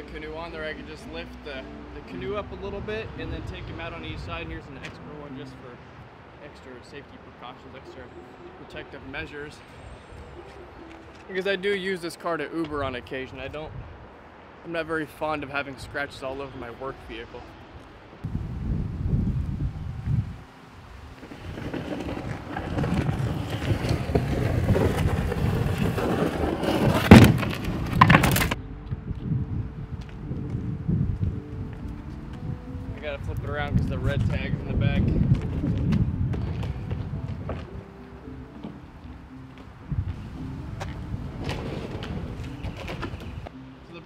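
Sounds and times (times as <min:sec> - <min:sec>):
canoe scraping and rustling: 0:21.0 - 0:28.6, 0:40.6 - 0:43.5.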